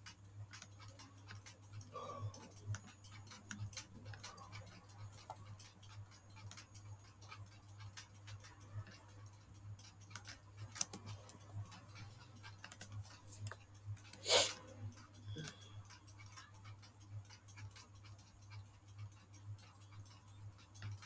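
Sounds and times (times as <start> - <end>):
mouse and keyboard clicking: 0.0 - 21.0.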